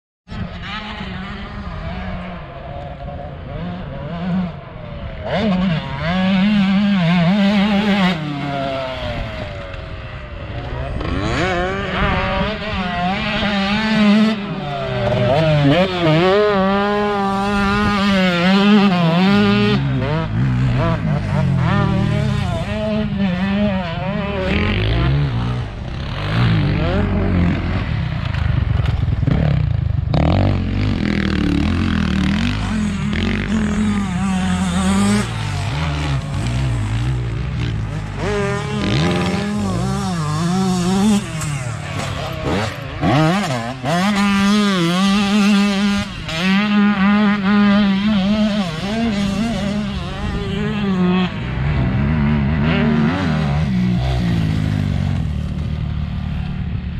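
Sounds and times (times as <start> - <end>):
dirt bike engines revving: 0.3 - 56.9.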